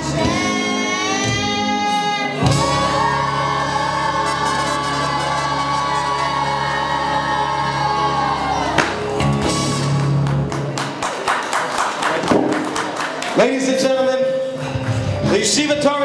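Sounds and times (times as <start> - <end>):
boys' choir singing: 0.0 - 8.8
audience applause and cheering: 2.6 - 13.7.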